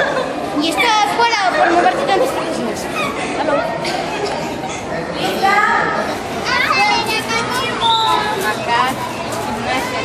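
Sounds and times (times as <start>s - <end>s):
background babble of group: 0.0s - 10.0s
children shouting and chattering: 0.0s - 10.0s.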